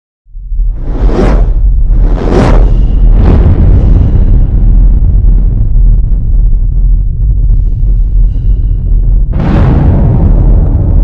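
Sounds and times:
deep loud rumble: 0.3s - 11.0s
whoosh: 0.4s - 11.0s.

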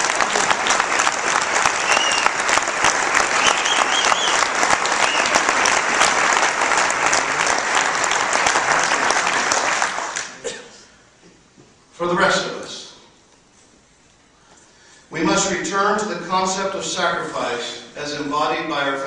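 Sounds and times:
audience applauding: 0.0s - 10.4s.

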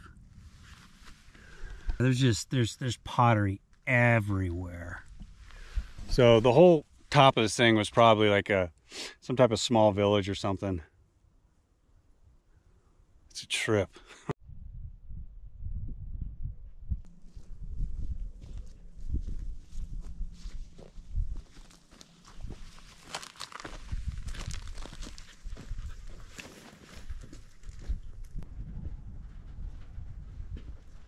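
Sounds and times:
wind rumble on microphone: 14.4s - 21.7s, 23.8s - 26.4s, 27.0s - 31.0s
footsteps crunching on gravel: 17.1s - 28.4s.

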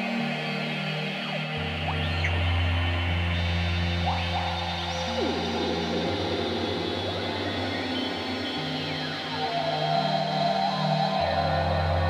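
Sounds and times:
low synthesizer bass drone: 1.6s - 9.9s.

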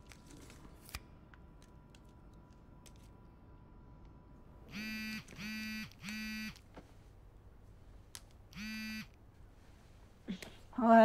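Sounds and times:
phone ringing in buzzing rings: 4.7s - 6.6s, 8.6s - 9.2s.

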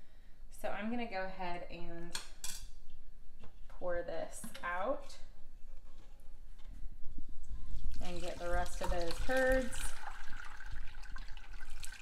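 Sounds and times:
liquid pouring and splashing: 7.6s - 12.0s.

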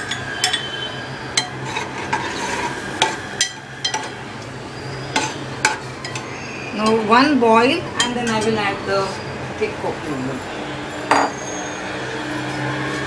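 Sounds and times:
spoon scraping metal pot: 1.4s - 4.2s, 5.0s - 7.0s.

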